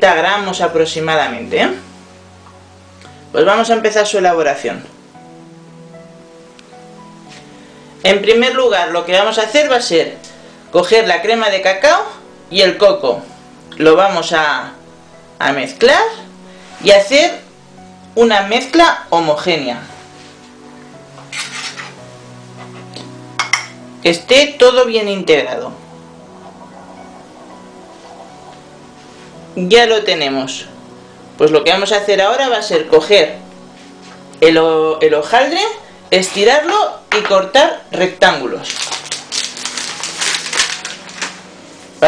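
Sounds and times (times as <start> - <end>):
metal utensil scraping ceramic bowl: 21.3 - 22.0
paper crinkling and rustling: 21.3 - 22.0, 38.5 - 42.0.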